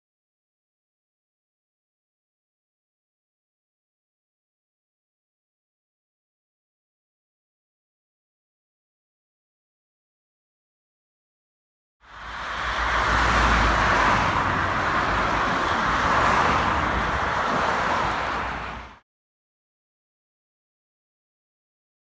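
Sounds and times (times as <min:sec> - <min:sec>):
road traffic passing: 0:12.0 - 0:19.0.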